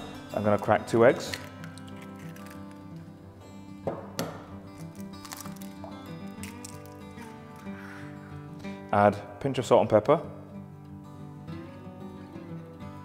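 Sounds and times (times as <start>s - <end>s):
soft background music: 0.0s - 13.0s
egg cracking: 1.2s - 3.2s, 4.2s - 7.8s.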